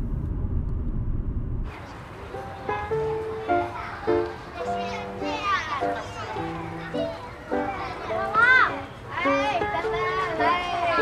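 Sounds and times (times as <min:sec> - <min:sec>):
children calling and chattering: 0:01.7 - 0:11.0
background music with held notes: 0:02.4 - 0:11.0.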